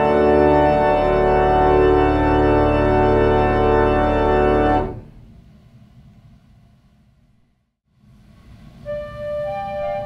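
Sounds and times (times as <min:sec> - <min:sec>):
reed organ chord: 0:00.0 - 0:05.0.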